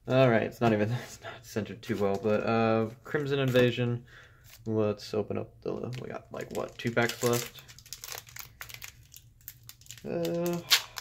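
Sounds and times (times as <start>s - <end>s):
foil wrapper crinkling: 5.8s - 11.0s.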